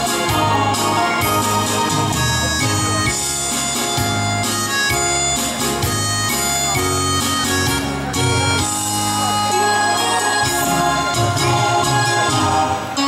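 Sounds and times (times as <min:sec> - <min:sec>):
lead melody of held notes: 0:00.0 - 0:13.0
stepping bass line: 0:00.0 - 0:13.0.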